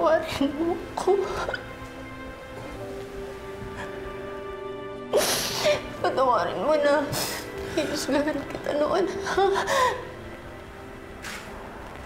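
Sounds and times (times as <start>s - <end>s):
soft background music: 0.0s - 12.0s
person sobbing: 9.0s - 10.2s.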